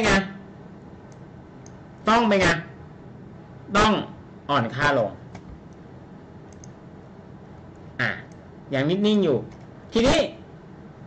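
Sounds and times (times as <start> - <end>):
low room hum: 0.0 - 11.0
faint computer mouse clicks: 6.5 - 6.8.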